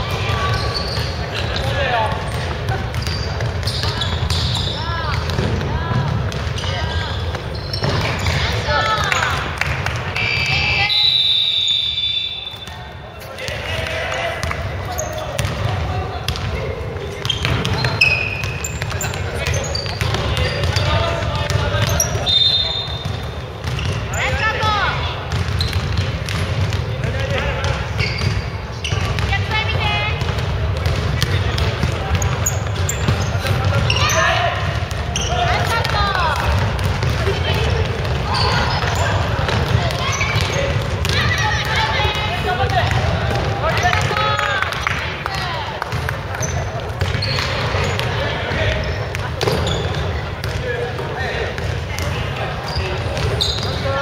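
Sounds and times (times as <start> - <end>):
players calling out: 0.0 - 54.0
basketball bouncing on wooden floor: 2.1 - 9.8, 15.2 - 22.0, 23.0 - 24.6, 25.2 - 48.2.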